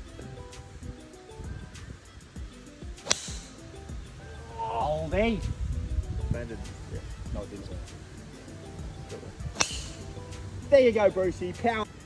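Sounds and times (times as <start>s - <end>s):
background music: 0.0s - 12.0s
golf club striking ball: 2.9s - 4.0s, 9.1s - 10.5s.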